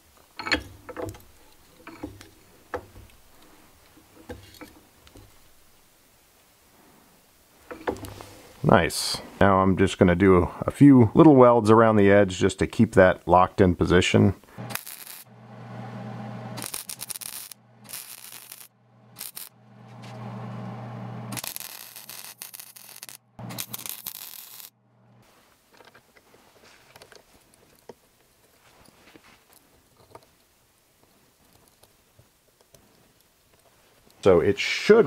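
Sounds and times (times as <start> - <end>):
welder humming and crackling: 14.5 - 25.2.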